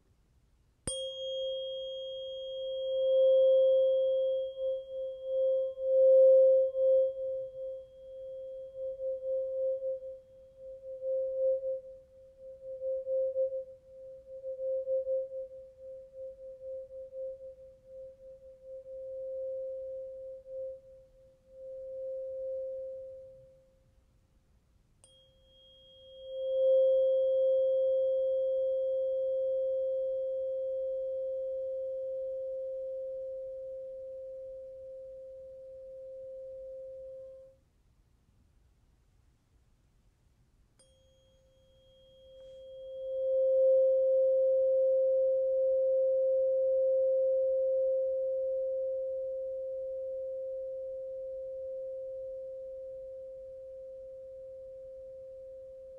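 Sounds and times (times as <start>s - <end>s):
faint tap on tuning fork: 0.8s - 10.2s, 25.0s - 37.6s, 40.8s - 49.4s
tuning fork ringing: 0.8s - 23.8s, 25.0s - 37.6s, 40.8s - 55.9s.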